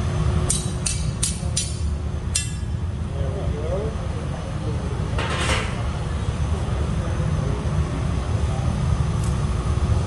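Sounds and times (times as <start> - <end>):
gas furnace rumbling: 0.0 - 10.0
steel tool tapping glass rod: 0.4 - 2.8.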